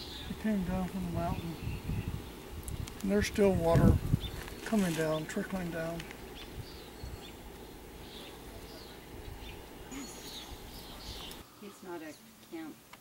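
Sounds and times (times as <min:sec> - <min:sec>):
faint bird chirps: 0:08.0 - 0:12.3.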